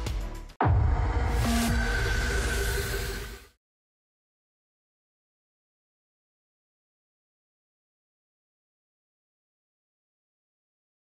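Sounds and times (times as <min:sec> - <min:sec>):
electronic music: 0:00.0 - 0:03.6
rising whoosh: 0:00.6 - 0:03.6.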